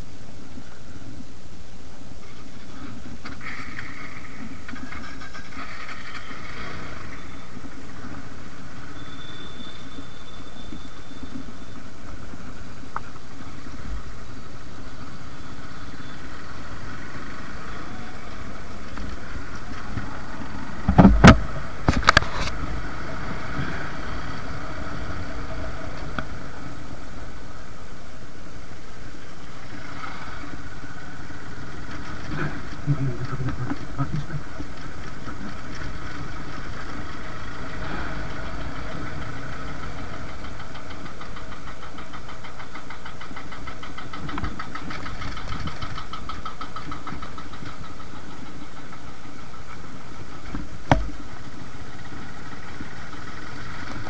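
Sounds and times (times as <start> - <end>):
motorcycle engine running: 2.3 - 54.0
sharp knocks: 50.9 - 51.2.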